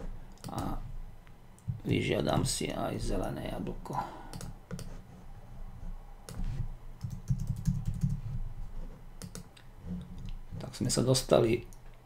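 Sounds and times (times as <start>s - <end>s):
typing on computer keyboard: 4.3s - 4.9s, 7.0s - 8.2s, 9.2s - 9.5s.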